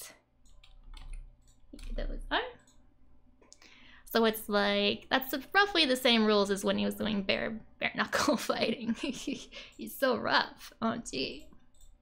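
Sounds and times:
computer mouse clicks: 0.4 - 3.7, 11.3 - 12.0.

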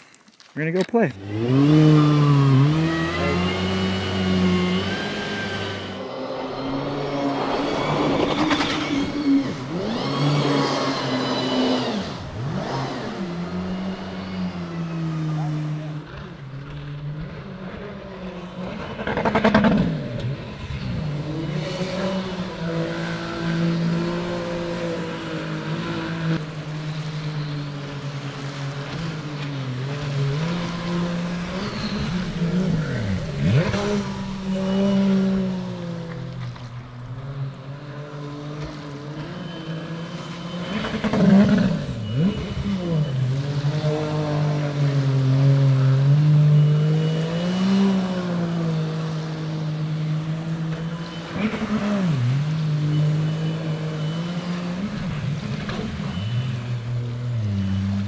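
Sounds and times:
jet boat engine revving: 1.2 - 58.0.

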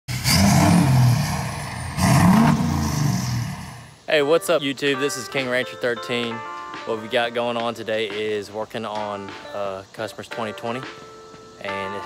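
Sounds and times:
diesel engine revving: 0.1 - 4.0.

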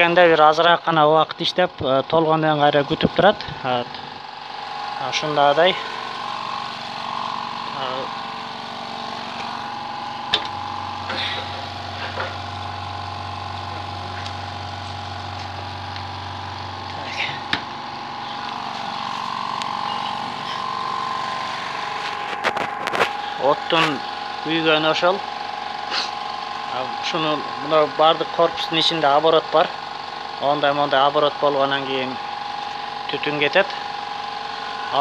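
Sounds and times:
electric motor hum: 0.0 - 35.0.

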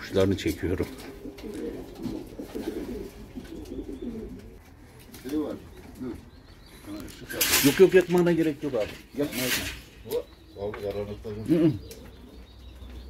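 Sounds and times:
pigeons cooing: 0.0 - 13.0.

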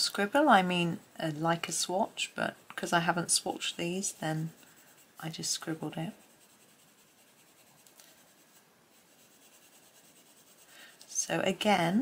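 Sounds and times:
coloured pencil shading on paper: 0.0 - 11.8.

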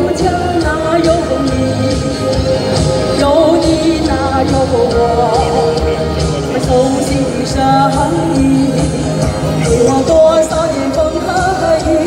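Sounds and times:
amplified backing track: 0.0 - 12.0
woman singing with vibrato: 0.0 - 12.0.

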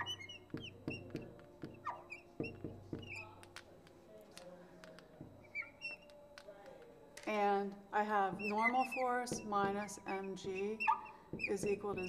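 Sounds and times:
marker squeaking on glass: 0.0 - 4.0, 4.8 - 7.4, 8.0 - 12.0
light marker taps: 0.0 - 7.4.

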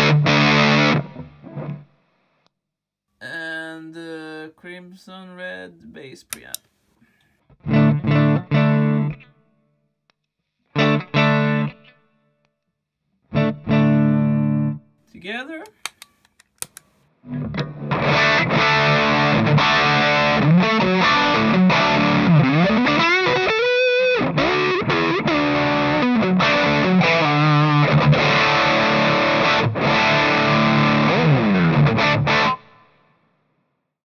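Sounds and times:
distorted fuzz electric guitar riff: 0.0 - 1.3, 17.6 - 32.7.

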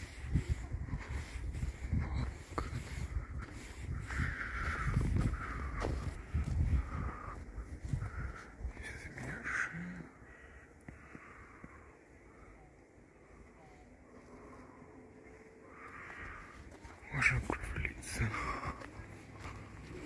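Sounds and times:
crows cawing: 3.5 - 12.5, 13.7 - 20.0.

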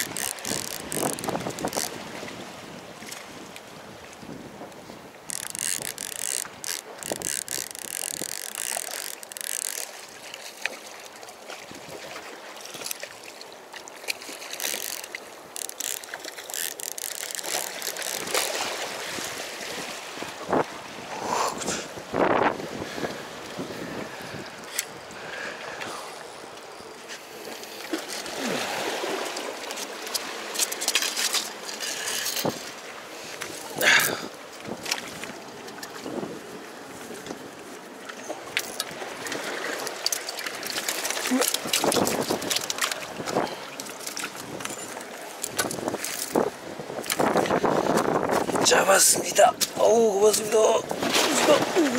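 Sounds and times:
fishing reel clicking and whirring: 0.0 - 2.0, 5.3 - 10.0, 14.4 - 18.6
small clicks and splashes: 0.0 - 2.0, 5.3 - 19.3, 29.2 - 32.8, 33.4 - 36.1, 38.0 - 48.6
water washing against rocks: 0.0 - 2.4, 14.0 - 20.3, 38.9 - 48.6, 50.9 - 51.9
wind on microphone: 0.0 - 9.7, 15.8 - 25.2, 45.5 - 48.7
seawater lapping among rocks: 0.0 - 51.9.

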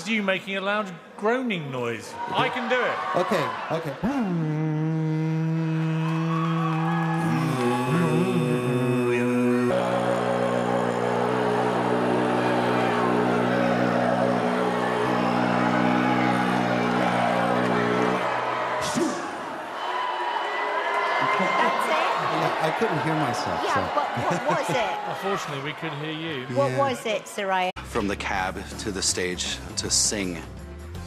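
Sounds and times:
man throat singing drone: 4.0 - 19.0.

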